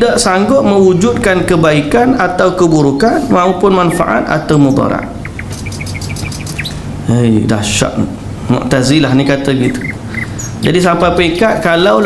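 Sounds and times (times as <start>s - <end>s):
low steady hum: 0.0s - 12.0s
small bird chirping: 3.8s - 6.9s, 9.6s - 10.6s.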